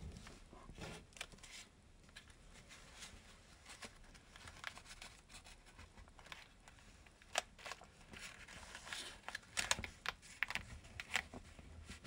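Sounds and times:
paper rustling and crinkling: 0.0 - 12.0.

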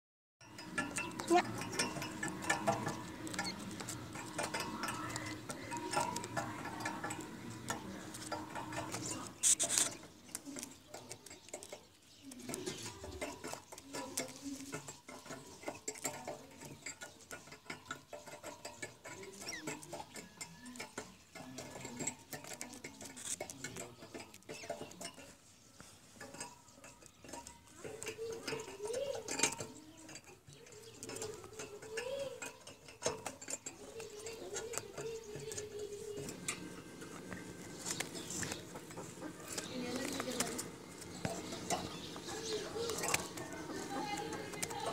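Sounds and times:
sharp clatter: 0.4 - 25.3
bird pecking on wire cage: 0.4 - 44.9.

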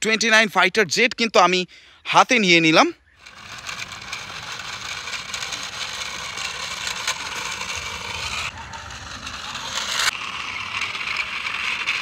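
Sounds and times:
toy wheels scraping on concrete: 3.1 - 12.0.

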